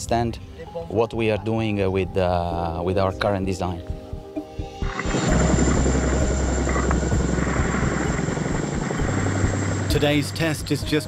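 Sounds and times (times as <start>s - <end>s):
thin high whine: 4.5s - 11.0s
deep rumble: 4.8s - 10.8s.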